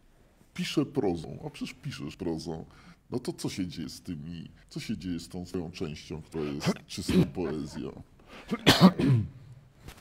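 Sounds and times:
person coughing: 6.4s - 9.4s.

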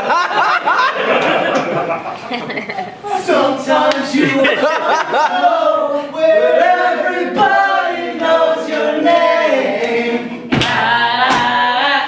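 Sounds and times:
voices singing a cappella: 2.9s - 12.0s.

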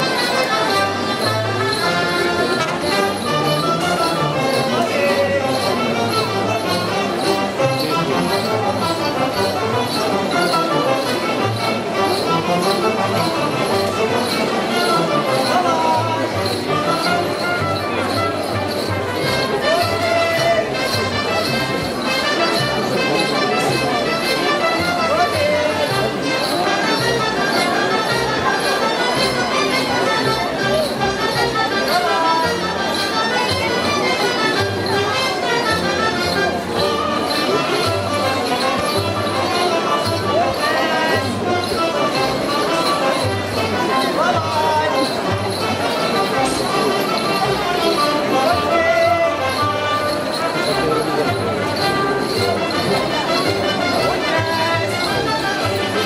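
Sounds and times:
band playing dance tune: 0.0s - 56.0s.

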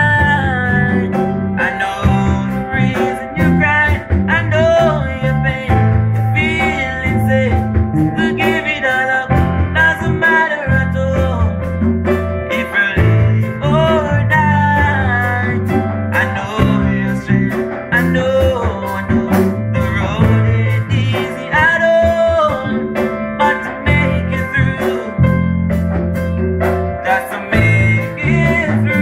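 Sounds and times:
person singing: 0.0s - 11.7s, 12.4s - 25.5s, 26.9s - 29.0s
drum kit with cymbals: 0.0s - 29.0s
electric bass line: 0.0s - 29.0s.

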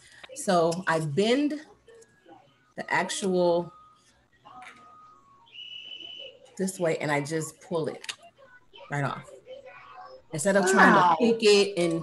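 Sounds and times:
faint high whistle-like tone: 3.7s - 6.6s.

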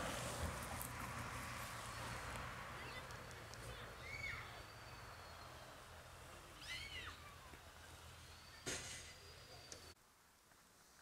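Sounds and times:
distant bird calls: 2.8s - 10.0s.

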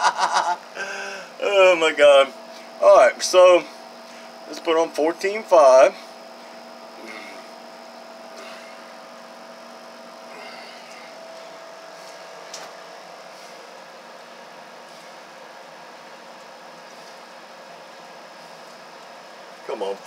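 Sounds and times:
equipment hum: 0.0s - 20.0s.

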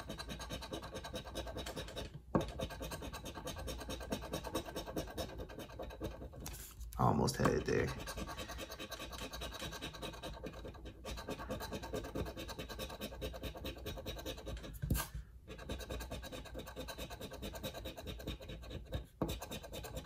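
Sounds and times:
coin scraping scratch-off ticket: 7.7s - 14.6s.

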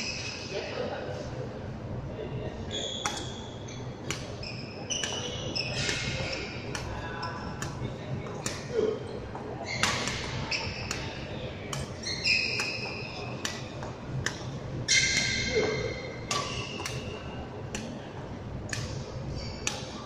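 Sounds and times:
shoes squeaking on wooden floor: 2.7s - 14.0s
rackets striking shuttlecocks: 2.7s - 20.0s.

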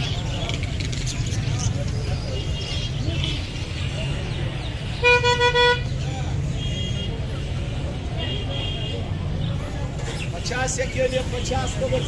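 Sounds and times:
vehicle horn tooting: 5.0s - 5.9s.

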